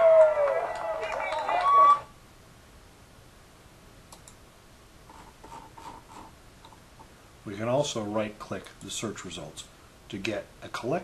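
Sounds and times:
computer mouse clicks: 0:04.1 - 0:04.4.

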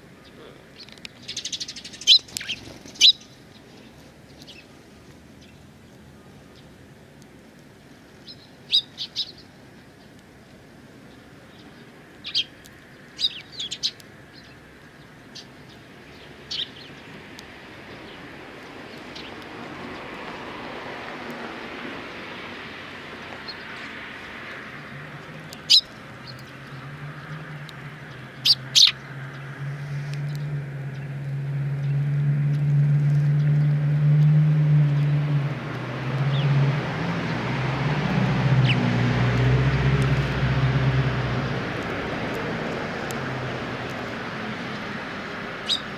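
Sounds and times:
engine humming: 0:00.0 - 0:45.9
sparrows chirping: 0:00.1 - 0:06.8, 0:07.8 - 0:20.4, 0:21.6 - 0:33.8, 0:38.6 - 0:38.9, 0:45.6 - 0:45.9.

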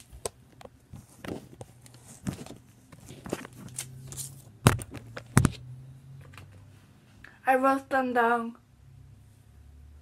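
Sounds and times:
hand rummaging knocks and rustles: 0:00.6 - 0:05.6.

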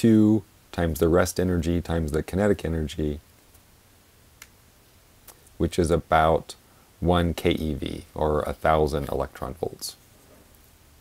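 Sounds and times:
person speaking: 0:00.0 - 0:03.3, 0:05.2 - 0:10.1.

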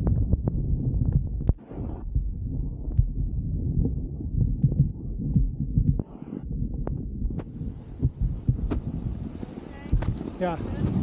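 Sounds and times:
wind buffeting microphone: 0:00.0 - 0:11.0
skis sliding over snow: 0:08.3 - 0:11.0.

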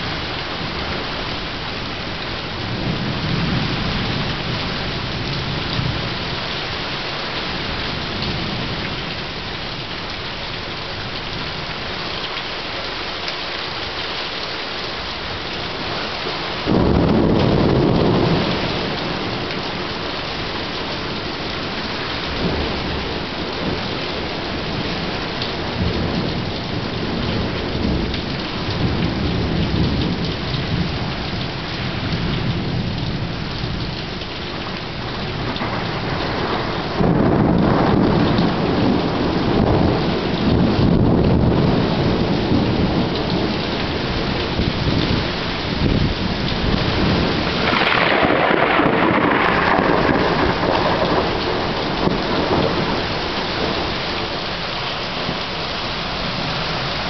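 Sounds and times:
steady rain: 0:00.0 - 0:57.0
thunder rumbling: 0:16.6 - 0:34.0, 0:34.6 - 0:57.0.

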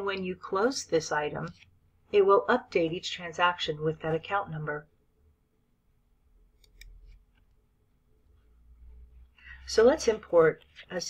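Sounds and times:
computer mouse clicks: 0:06.6 - 0:07.5.

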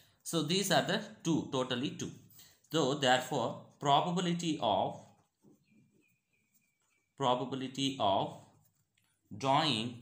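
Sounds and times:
marker pen scratching on paper: 0:03.6 - 0:07.2, 0:08.3 - 0:09.4.

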